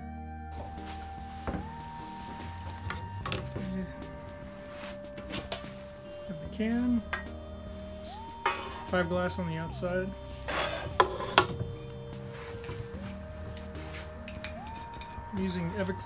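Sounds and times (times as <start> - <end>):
background music of held tones: 0.0 - 16.0
tin canister clinking: 10.5 - 11.6
tin lid coming off: 10.5 - 11.6.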